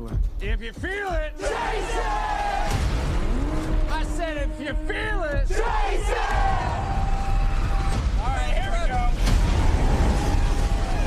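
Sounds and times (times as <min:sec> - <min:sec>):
people whooping and yelling: 0:05.6 - 0:08.0, 0:09.4 - 0:11.0.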